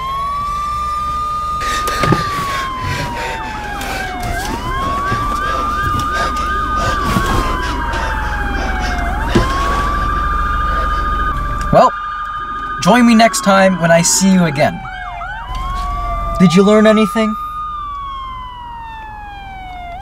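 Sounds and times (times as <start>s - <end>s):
emergency siren wailing: 0.0s - 20.0s
overlapping siren tones: 0.0s - 20.0s.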